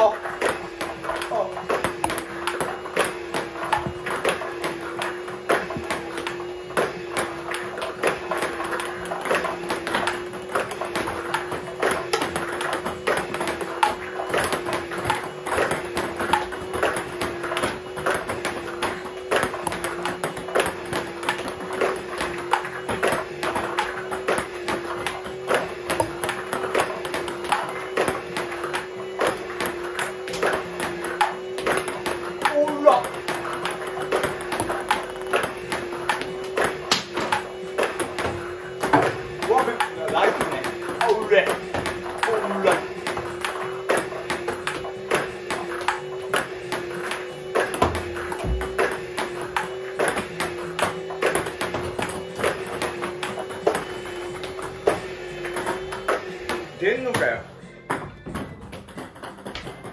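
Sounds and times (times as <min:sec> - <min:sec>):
table tennis ball clicking: 0:57.9 - 0:59.9.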